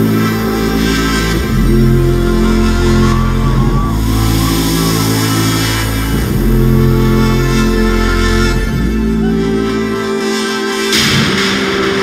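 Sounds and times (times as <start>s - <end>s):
deep bass drone: 0.0s - 12.0s.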